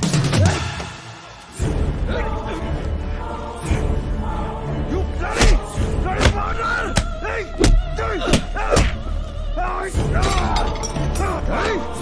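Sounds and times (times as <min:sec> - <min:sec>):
dramatic music with swooping tones: 0:00.0 - 0:12.0
crash of shattering crockery and glass: 0:10.2 - 0:11.2.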